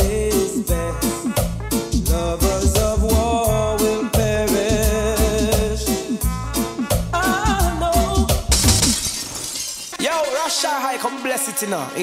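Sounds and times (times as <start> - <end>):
reggae vocal track with heavy bass: 0.0 - 9.0
shattering glass effect: 8.4 - 10.7.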